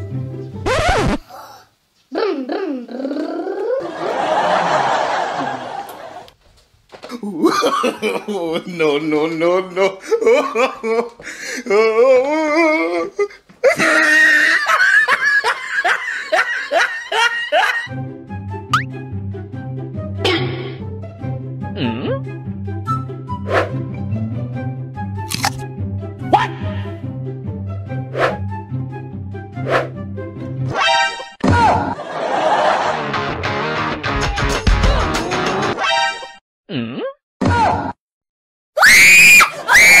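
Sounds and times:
high-pitched laughter: 13.6 - 17.9
woman screaming: 13.8 - 14.7, 38.8 - 40.0.

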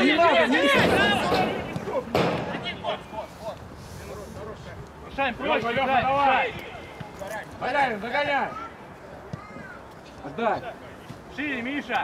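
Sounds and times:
players shouting: 0.0 - 3.6
sharp thump: 0.8 - 2.8.

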